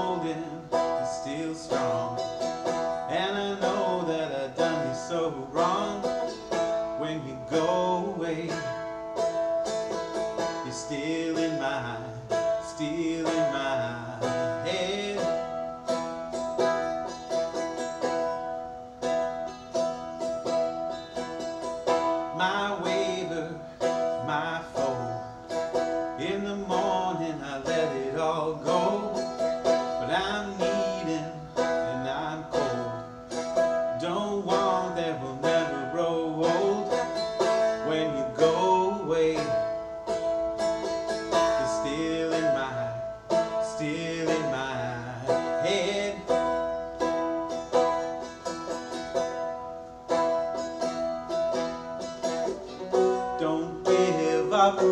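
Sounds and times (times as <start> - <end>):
man singing: 0.0 - 17.0, 21.2 - 47.1, 52.9 - 54.9
strummed dulcimer: 0.0 - 54.9.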